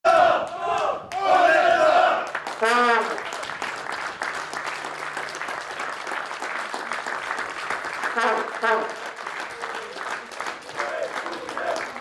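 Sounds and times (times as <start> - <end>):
group shouting in unison: 0.0 - 2.2.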